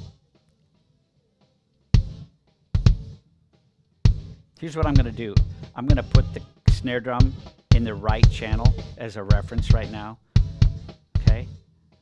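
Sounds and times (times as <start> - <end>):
kick drum hits: 2.0 - 2.2, 2.8 - 3.1, 4.1 - 11.5.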